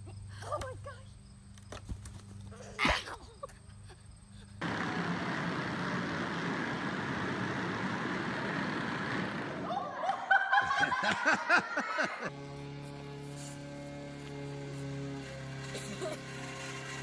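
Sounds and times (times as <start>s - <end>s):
children riding on concrete floor: 2.2s - 17.0s
child laughing: 2.5s - 4.1s, 9.7s - 12.3s, 15.6s - 16.4s.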